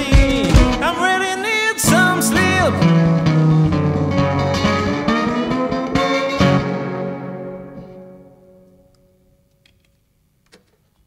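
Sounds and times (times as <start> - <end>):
drums playing: 0.0 - 1.0
resonator guitar picked: 1.8 - 9.8.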